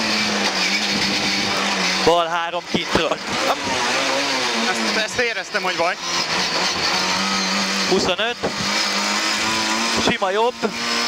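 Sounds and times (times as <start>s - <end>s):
car engine running at speed: 0.0s - 11.0s.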